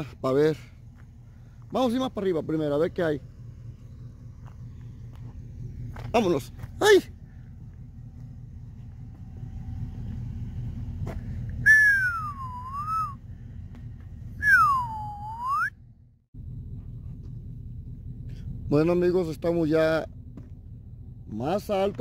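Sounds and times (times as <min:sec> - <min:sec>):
low rumble: 0:00.0 - 0:22.0
person whistling sliding notes: 0:11.6 - 0:13.2, 0:14.4 - 0:15.8.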